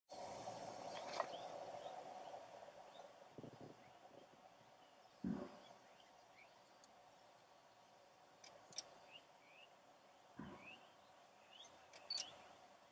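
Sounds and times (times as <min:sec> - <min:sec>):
faint steady hum: 0:00.1 - 0:12.9
low thuds: 0:05.2 - 0:05.8, 0:10.4 - 0:10.8
high bird chirps: 0:10.4 - 0:12.6.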